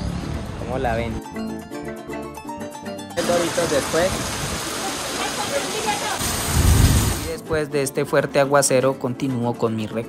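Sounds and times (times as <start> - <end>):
heavy rain pouring: 3.2 - 7.4.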